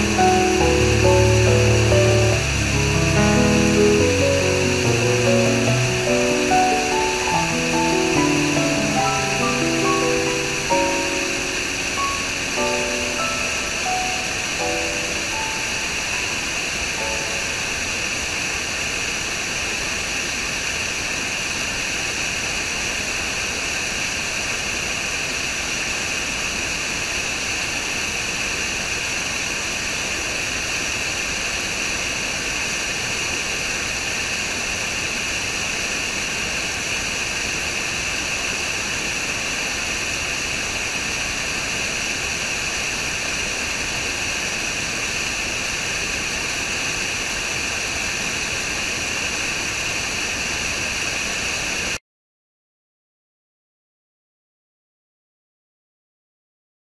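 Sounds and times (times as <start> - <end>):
soft musical notes: 0.0 - 18.0
waterfall rushing over rocks: 0.0 - 52.0.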